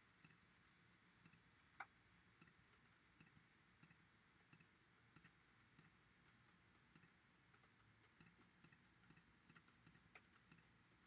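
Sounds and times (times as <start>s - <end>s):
computer mouse clicks: 1.2s - 10.8s.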